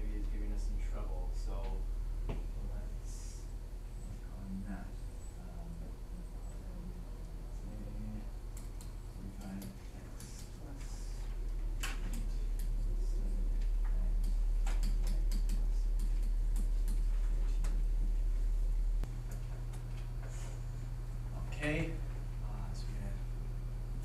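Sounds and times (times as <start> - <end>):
low hum: 0.0 - 24.0.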